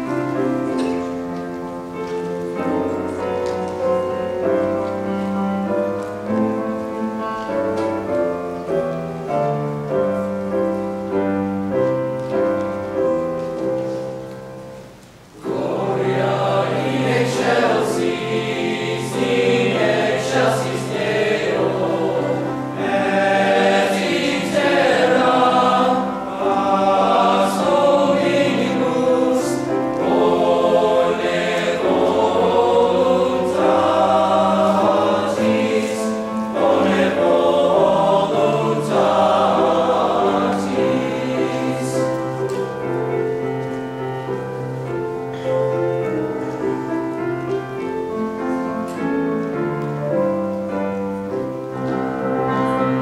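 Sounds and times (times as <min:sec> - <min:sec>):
grand piano accompaniment: 0:00.0 - 0:53.0
male choir singing chords: 0:15.4 - 0:42.6.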